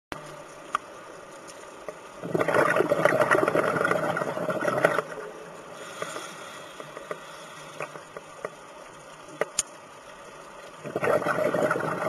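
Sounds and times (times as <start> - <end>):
low background hiss: 0.2 - 12.0.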